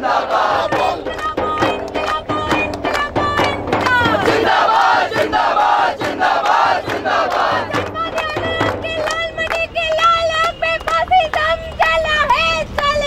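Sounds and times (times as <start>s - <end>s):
crowd shouting: 0.0s - 1.1s, 4.1s - 7.9s
crowd chanting: 0.0s - 1.2s, 3.8s - 8.0s
hand clapping: 0.5s - 13.0s.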